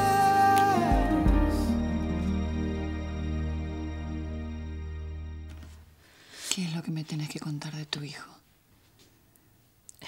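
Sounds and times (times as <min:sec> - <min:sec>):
woman speaking: 0:06.4 - 0:08.5.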